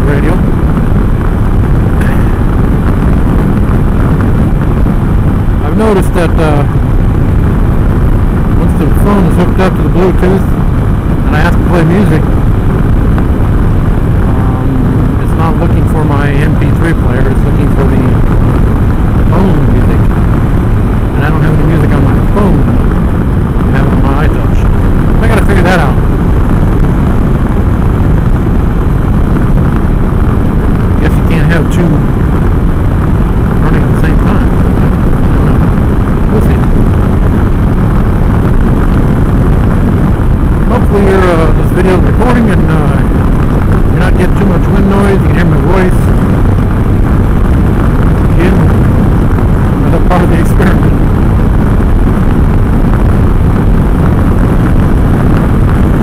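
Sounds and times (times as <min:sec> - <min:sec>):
engine running: 0:00.0 - 0:56.0
road noise: 0:00.0 - 0:56.0
wind rush: 0:00.0 - 0:56.0.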